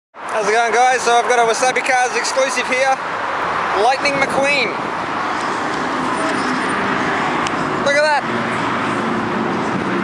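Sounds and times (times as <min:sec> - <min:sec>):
road traffic noise: 0:00.2 - 0:10.0.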